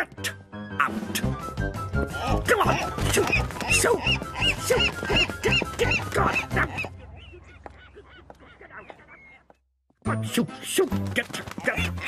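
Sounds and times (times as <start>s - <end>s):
background music: 0.0s - 8.0s, 10.0s - 12.0s
cartoon seagull squawking: 2.5s - 9.5s.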